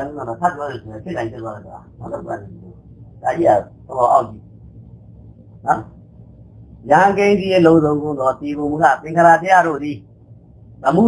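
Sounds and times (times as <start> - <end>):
man giving a talk: 0.0 - 4.4, 6.8 - 10.0
faint background hum: 0.0 - 11.0.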